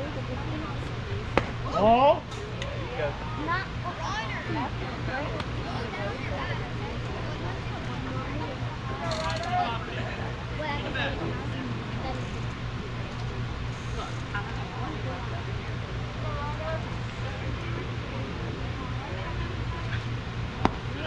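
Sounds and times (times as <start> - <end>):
faint distant voices: 0.0 - 21.0
steady low hum: 0.0 - 21.0
baseball smacking into mitt: 1.3 - 1.6, 20.6 - 20.8.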